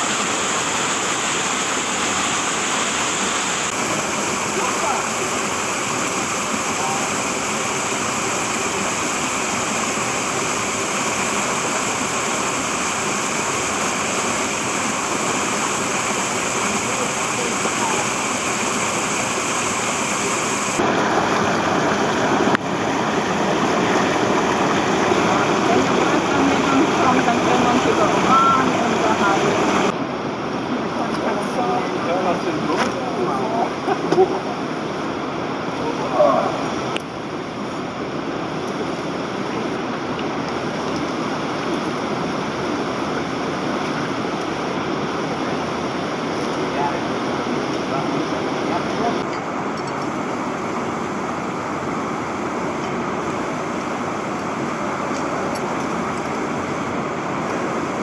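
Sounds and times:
waterfall rushing water: 0.0 - 58.0.

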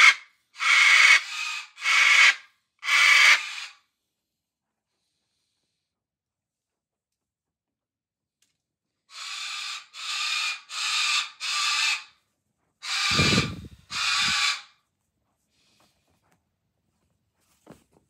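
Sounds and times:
cockatoo screeching calls: 0.0 - 3.8, 9.1 - 12.1, 12.8 - 14.8.

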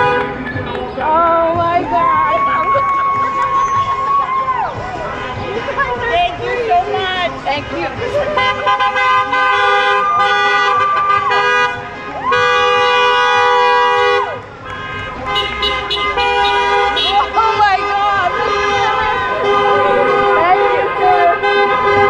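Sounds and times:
car horns honking: 0.0 - 0.6, 4.8 - 22.0
voices: 0.0 - 22.0.

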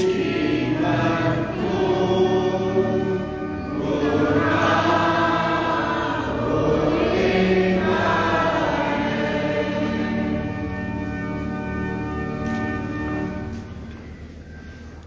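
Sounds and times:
congregation singing a hymn: 0.0 - 13.5.

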